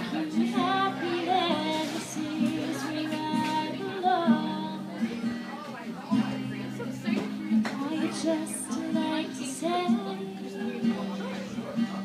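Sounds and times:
woman singing: 0.0s - 5.1s, 7.5s - 10.9s
strummed acoustic guitar: 0.0s - 12.0s.

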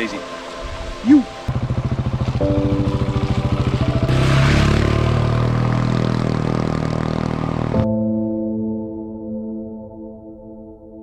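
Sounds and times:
motorcycle engine running: 1.5s - 7.8s.

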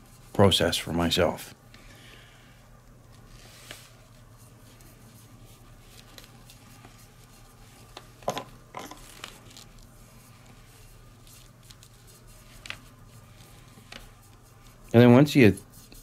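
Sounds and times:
steady low hum: 0.0s - 16.0s
brush scratches and clicks: 2.8s - 8.2s, 9.0s - 16.0s.

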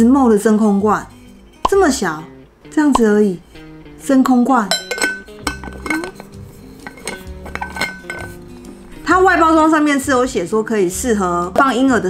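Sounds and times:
metal jar lid clinking: 3.0s - 9.0s.

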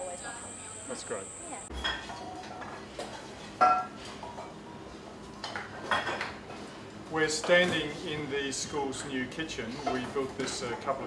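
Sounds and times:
dishes and utensils clattering: 1.8s - 4.6s, 5.4s - 6.6s, 9.7s - 11.0s.

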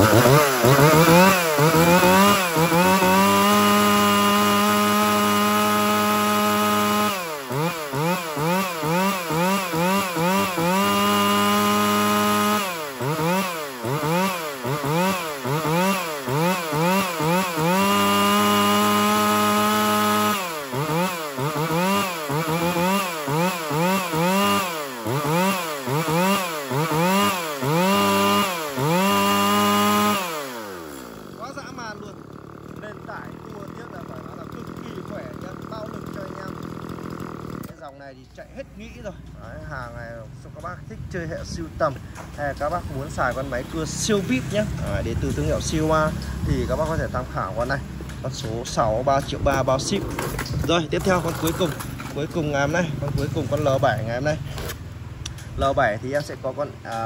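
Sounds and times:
chainsaw engine revving: 0.0s - 57.0s.

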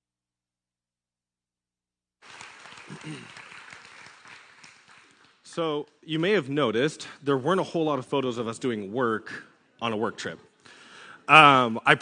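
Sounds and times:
congregation clapping: 2.2s - 6.4s.

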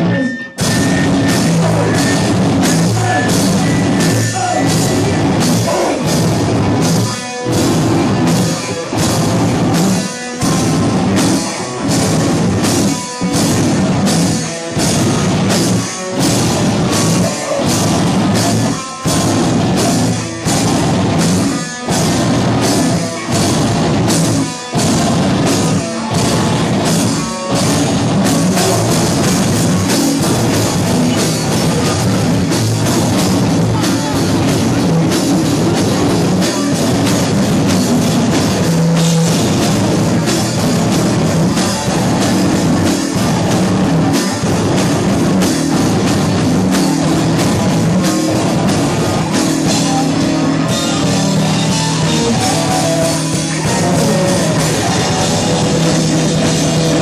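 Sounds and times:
live rock band playing: 0.0s - 57.0s.

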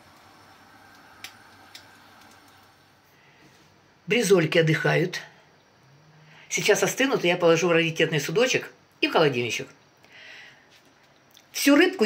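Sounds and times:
patties sizzling in oil: 0.0s - 3.1s.

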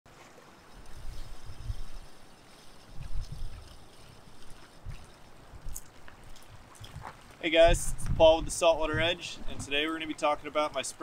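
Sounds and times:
waves lapping against rocks: 0.1s - 7.6s
wind gusts on microphone: 0.7s - 10.8s.

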